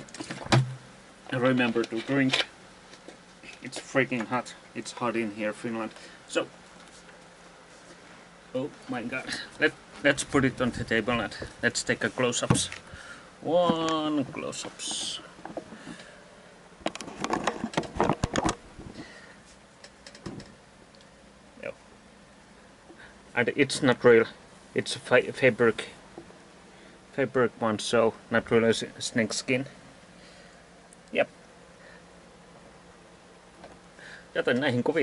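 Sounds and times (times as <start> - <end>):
handling knocks and clicks: 16.8 - 18.6, 19.8 - 20.6.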